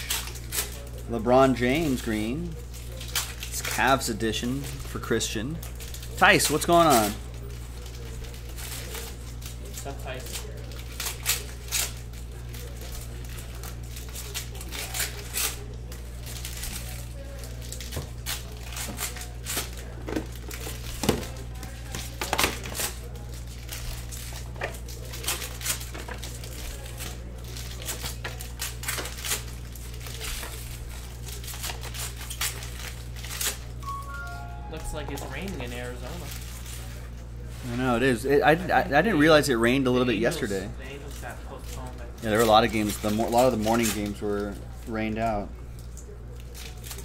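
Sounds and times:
cards and wrappers crinkling: 0.0s - 47.0s.

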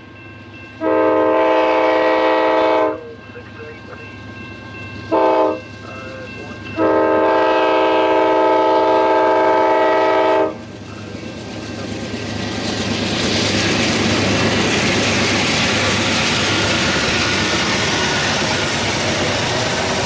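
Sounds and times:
train passing on rails: 0.0s - 20.0s
locomotive air horn blasts: 0.8s - 3.0s, 5.1s - 5.6s, 6.8s - 10.6s.

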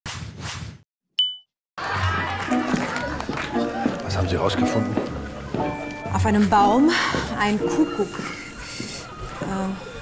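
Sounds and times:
bright ding chime: 1.2s - 1.5s
background music: 1.8s - 9.1s.

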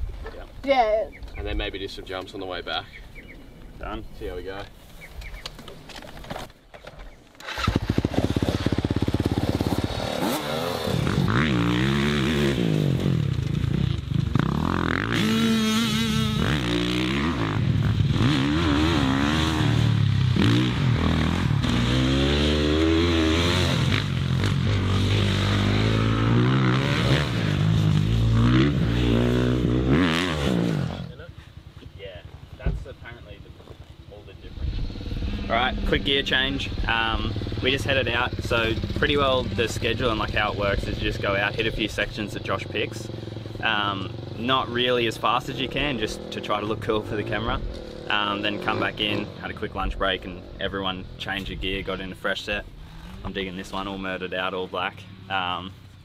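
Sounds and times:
dirt bike engine revving: 7.4s - 31.5s, 34.3s - 55.5s.

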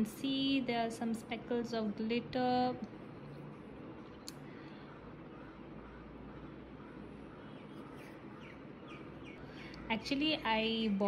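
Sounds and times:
bird chirping: 4.5s - 9.8s.

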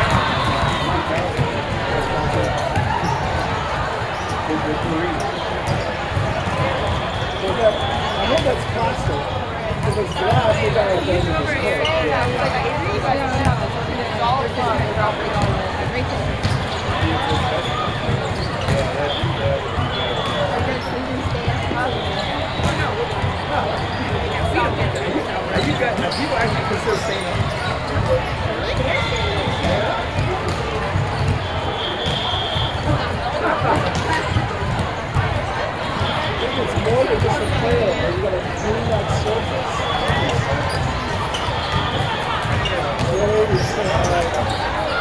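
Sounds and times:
sneakers squeaking on court: 0.0s - 13.8s, 14.4s - 45.0s
babble of many voices: 0.0s - 45.0s
volleyballs being hit and bouncing: 0.0s - 45.0s.

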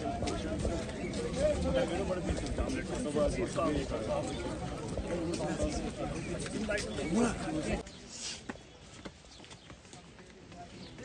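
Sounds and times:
footsteps on stone steps: 0.0s - 11.0s.

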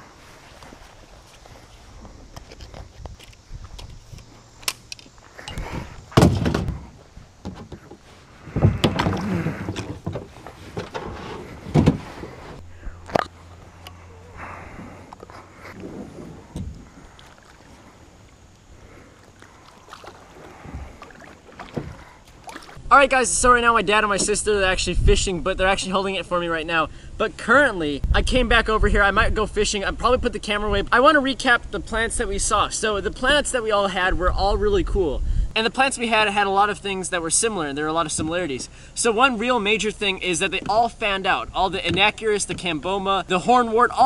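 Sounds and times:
rustling: 0.0s - 22.8s
scraping: 5.3s - 22.8s
thumps and knocks of kayak: 6.0s - 13.2s, 15.8s - 17.0s, 19.8s - 22.8s, 41.8s - 42.8s.

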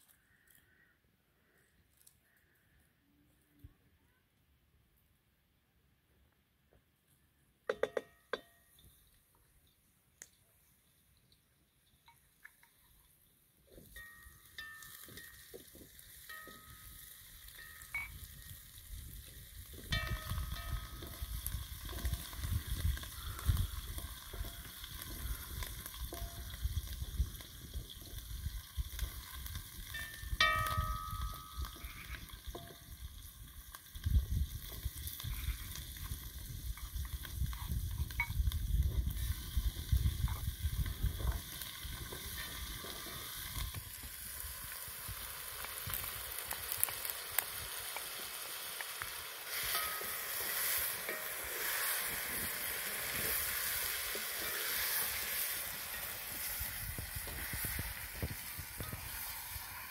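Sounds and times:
food sizzling in oil: 12.1s - 59.9s.

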